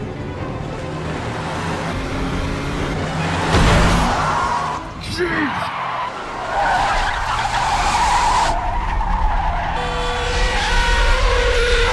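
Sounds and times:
car tyres screeching: 2.9s - 11.9s.

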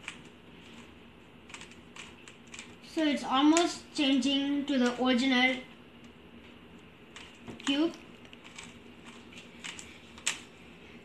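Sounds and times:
rubik's cube clicking: 1.5s - 2.7s, 7.2s - 10.4s.

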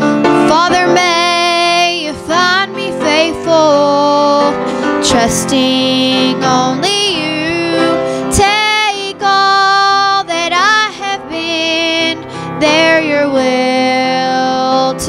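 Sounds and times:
piano accompaniment: 0.0s - 15.0s
woman singing gospel song: 0.3s - 15.0s.

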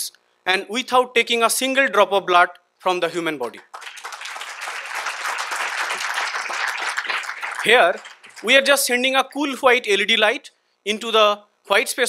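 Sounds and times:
audience applauding: 3.6s - 8.8s.

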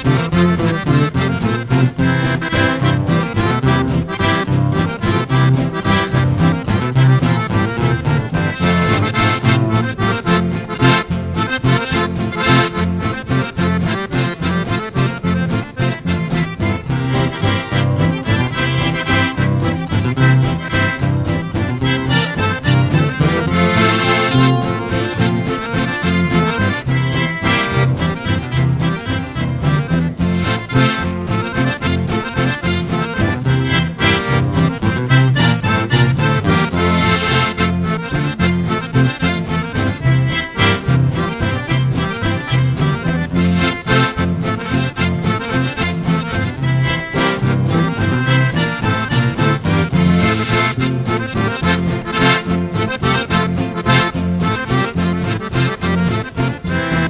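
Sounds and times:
accordion melody: 0.0s - 57.0s
band playing a waltz: 0.0s - 57.0s.

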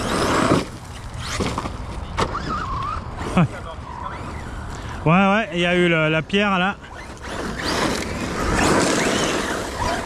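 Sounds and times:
rc car tyres crunching gravel: 0.0s - 4.8s, 5.5s - 10.0s.

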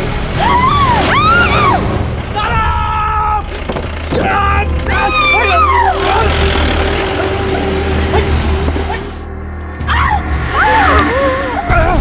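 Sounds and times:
car engine hum: 1.9s - 10.4s
high shouts or screams: 4.2s - 6.5s.

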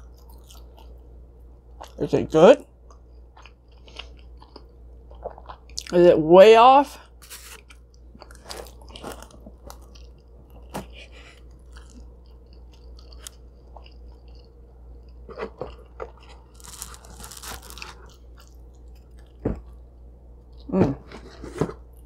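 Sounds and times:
chewing pizza: 0.0s - 2.0s, 2.8s - 6.1s, 7.6s - 20.8s
low steady hum: 0.0s - 22.0s
crust crunching: 7.2s - 14.5s, 15.1s - 19.8s.

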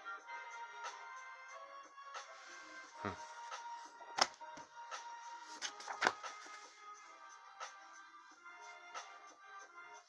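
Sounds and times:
background music: 0.0s - 10.0s
comic books knocking and sliding: 5.5s - 6.6s.

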